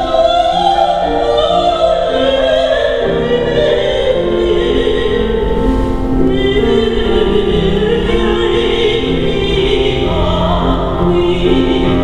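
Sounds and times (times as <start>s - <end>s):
grand piano: 0.0s - 12.0s
woman singing opera: 0.0s - 12.0s.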